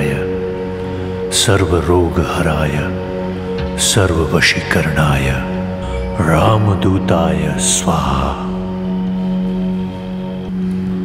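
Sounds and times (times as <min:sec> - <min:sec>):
chanting: 0:00.0 - 0:11.0
low music drone: 0:00.0 - 0:11.0.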